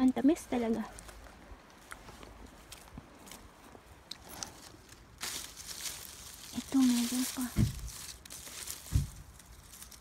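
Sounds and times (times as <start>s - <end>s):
leaves rustling: 0.0s - 10.0s
footsteps on grass and soil: 0.3s - 10.0s.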